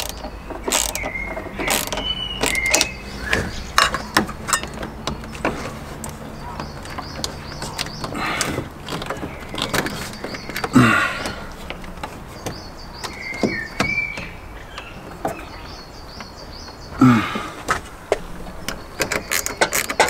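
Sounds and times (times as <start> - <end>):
parts clicking and scraping: 0.0 - 15.6, 16.2 - 20.0.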